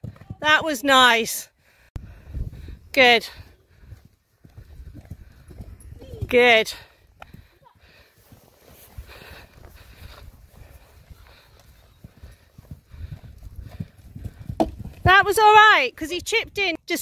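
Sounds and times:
horse hoofbeats on soft ground: 0:03.7 - 0:16.6.

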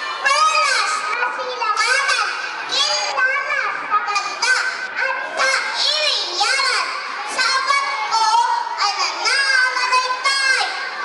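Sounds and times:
child reciting loudly: 0:00.0 - 0:11.0.

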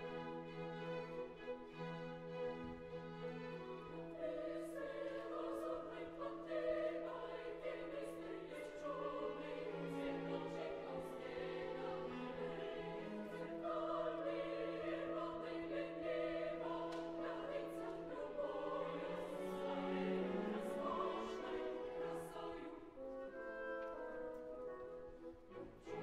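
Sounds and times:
opera chorus singing: 0:00.0 - 0:26.0.

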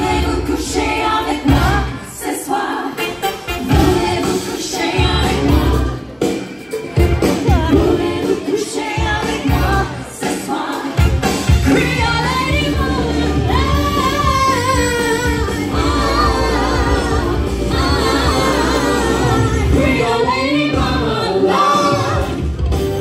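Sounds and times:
amplified backing music with heavy bass: 0:00.0 - 0:23.0.

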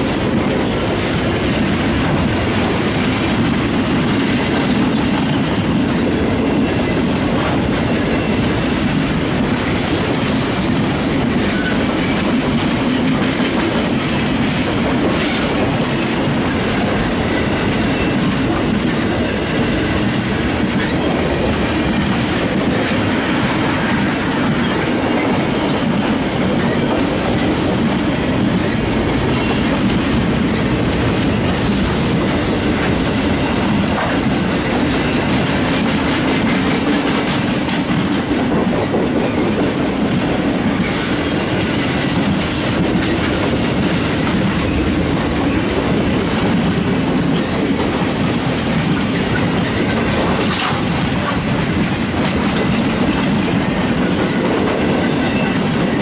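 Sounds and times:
freight train rolling past: 0:00.0 - 0:56.0
steel wheels clattering on rails: 0:00.0 - 0:56.0.

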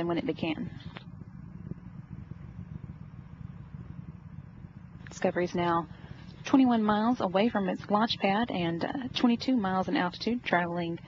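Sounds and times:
rocket engine crackling rumble: 0:00.0 - 0:11.0.

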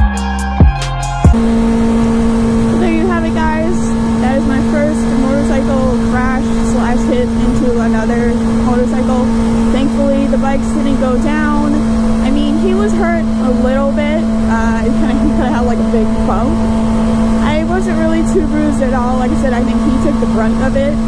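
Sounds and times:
music with heavy drum hits: 0:00.0 - 0:01.4
motorcycle engine cruising: 0:00.0 - 0:21.0.

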